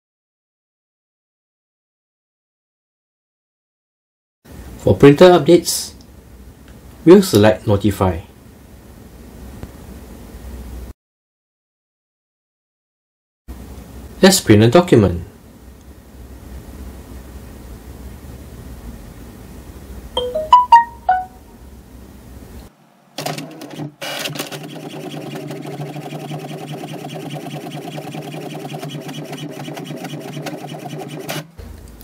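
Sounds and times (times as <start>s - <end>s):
printer paper pickup clunks: 23.2s - 25.6s
printer whirring and ticking: 23.2s - 31.5s.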